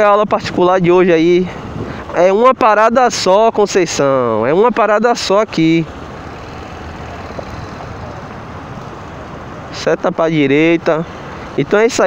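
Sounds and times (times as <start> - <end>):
road traffic: 0.0 - 12.0
motorcycle engine running: 5.5 - 9.7.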